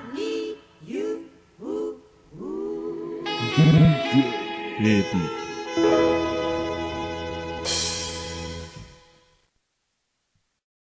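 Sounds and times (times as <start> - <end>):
wordless vocal hum: 0.0 - 5.9
sparse backing music: 3.2 - 9.4.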